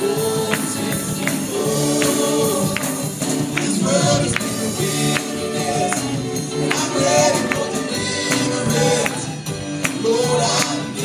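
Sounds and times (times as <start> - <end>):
backing music: 0.0 - 11.0
gospel singing: 0.0 - 11.0.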